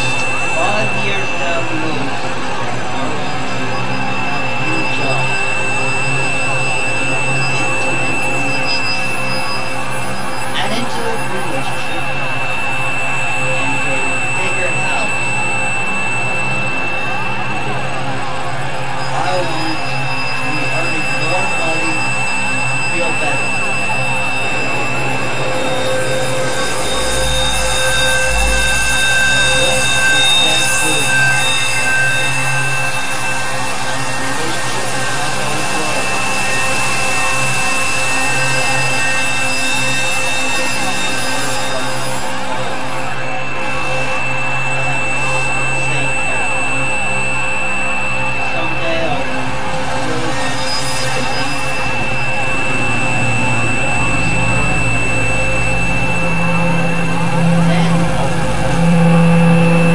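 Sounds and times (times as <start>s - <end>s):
electronic drone music: 0.0s - 59.9s
low rumble: 51.7s - 59.9s.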